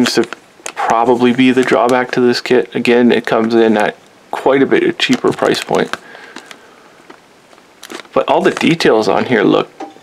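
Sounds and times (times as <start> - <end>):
plastic bag crinkling: 0.0 - 9.6.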